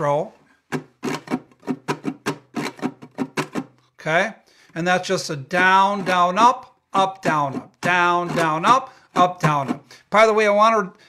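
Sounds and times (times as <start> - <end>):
muted ukulele strumming: 0.7 - 3.7, 5.5 - 9.9.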